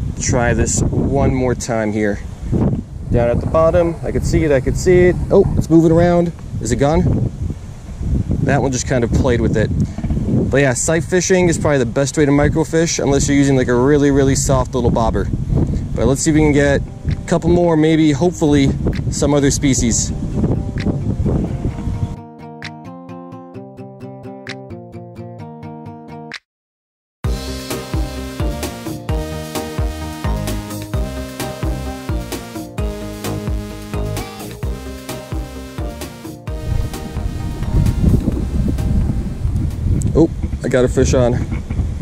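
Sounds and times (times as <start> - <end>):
wind buffeting microphone: 0.0 - 22.2, 36.5 - 42.0
background music: 20.1 - 26.4, 27.2 - 39.9.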